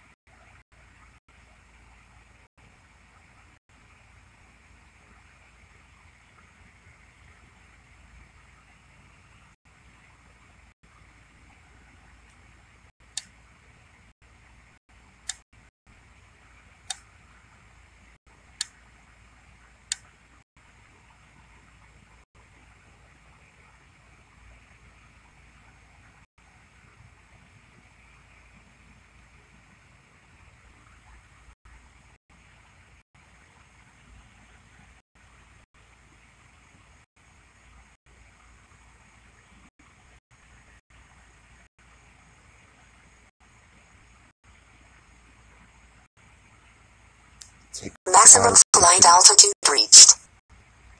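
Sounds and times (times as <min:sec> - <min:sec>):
faint background noise: 0:00.0 - 0:50.9
sharp clicks: 0:15.2 - 0:15.4.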